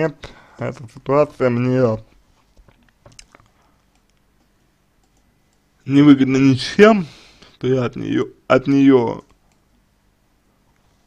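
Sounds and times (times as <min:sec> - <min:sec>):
man talking: 0:00.0 - 0:02.1, 0:05.8 - 0:09.3.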